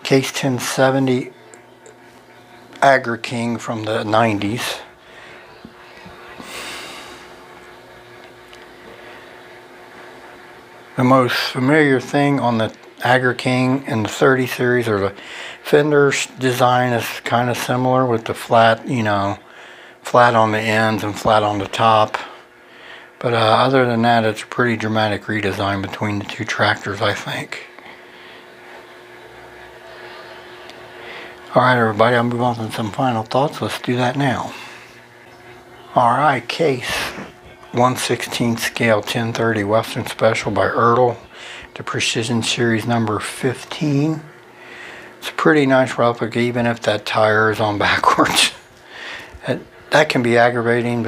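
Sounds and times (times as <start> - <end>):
faint steady hum: 0.0 - 51.0.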